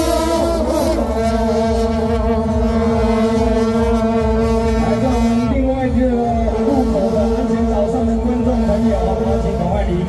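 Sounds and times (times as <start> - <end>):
metal horns droning: 0.0 - 10.0.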